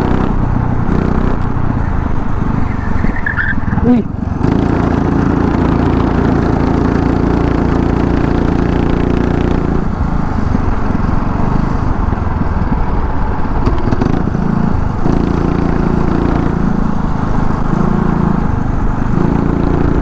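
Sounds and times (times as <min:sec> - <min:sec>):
go-kart engine revving high: 0:00.0 - 0:12.5, 0:13.6 - 0:20.0.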